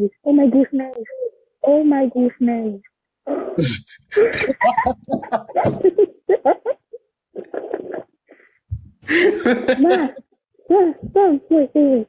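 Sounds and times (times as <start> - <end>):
muffled voice exclaiming: 3.6 - 5.4, 9.4 - 10.2.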